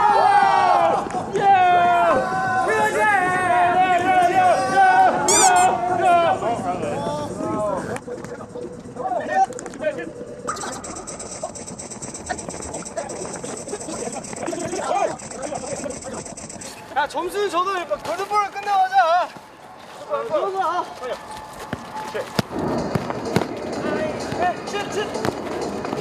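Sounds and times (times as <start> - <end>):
players shouting and calling: 0.0 - 11.0, 13.3 - 26.0
steady high-pitched whine: 5.3 - 17.6.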